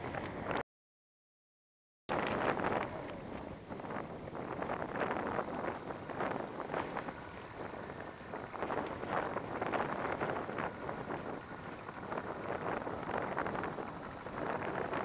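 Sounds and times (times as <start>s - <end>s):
wind buffeting microphone: 0.0s - 0.6s, 2.1s - 15.0s
off-road vehicle engine: 2.1s - 15.0s.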